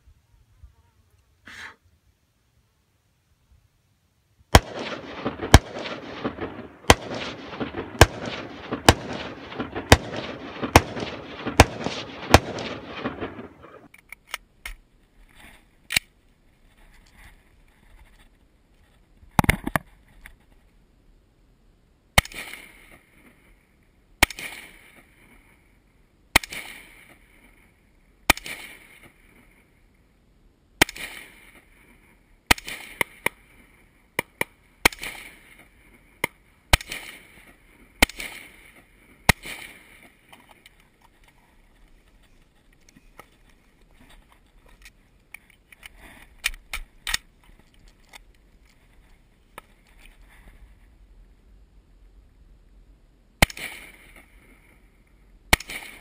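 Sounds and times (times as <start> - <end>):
rapid rifle shots echoing: 4.5 - 13.9, 30.8 - 31.6, 36.7 - 40.0, 55.5 - 56.0
single close rifle shots: 4.5 - 13.9, 22.2 - 23.1, 24.2 - 25.1, 26.3 - 27.3, 28.3 - 29.4, 30.8 - 31.7, 32.5 - 33.5, 34.2 - 35.8, 36.7 - 40.4, 53.4 - 54.4, 55.5 - 56.0.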